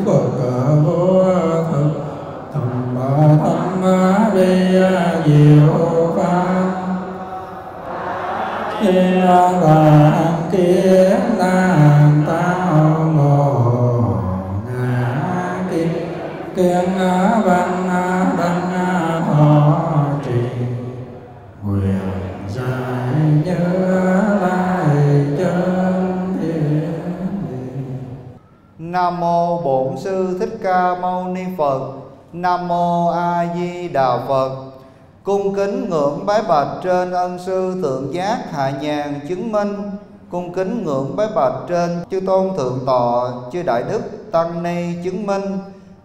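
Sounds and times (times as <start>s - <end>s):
people chanting in unison: 0.0s - 28.4s.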